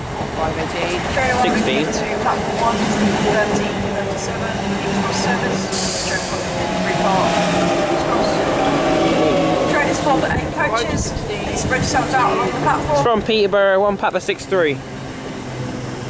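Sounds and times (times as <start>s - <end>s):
electric train running hum: 0.0s - 16.0s.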